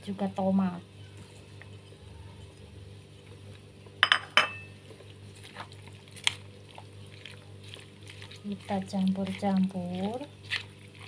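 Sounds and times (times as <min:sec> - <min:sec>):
low steady hum: 0:00.0 - 0:11.0
utensil clinking against cookware: 0:04.0 - 0:04.7.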